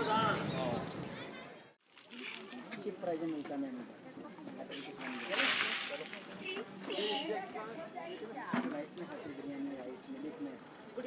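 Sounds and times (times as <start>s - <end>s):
water splashing onto person: 1.8s - 2.8s, 4.9s - 6.6s.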